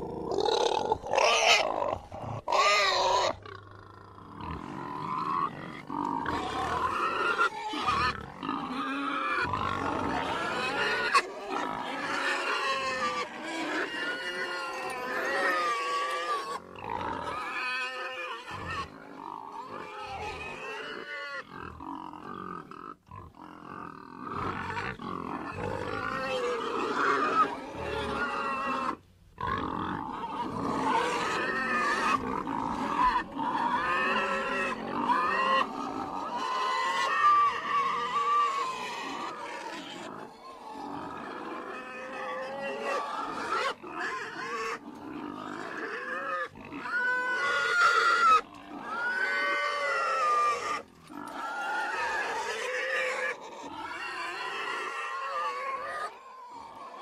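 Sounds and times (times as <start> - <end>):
pigs grunting and squealing: 0.0 - 57.0.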